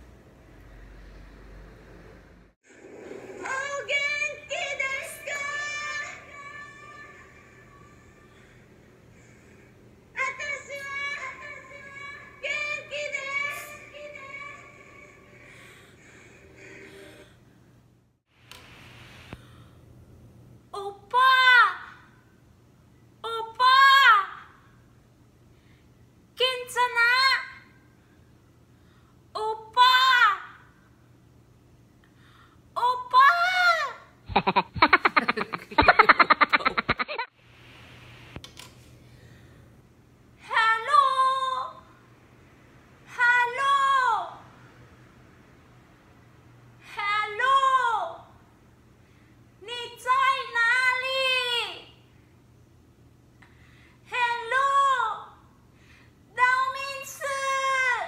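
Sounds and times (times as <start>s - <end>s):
faint low hum: 0.0s - 58.0s.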